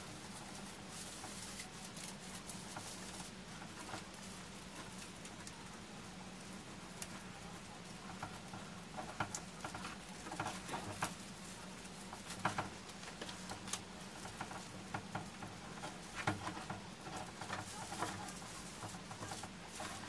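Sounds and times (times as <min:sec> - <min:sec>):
faint steady hum: 0:00.0 - 0:20.0
rustling of plastic needles: 0:00.0 - 0:20.0.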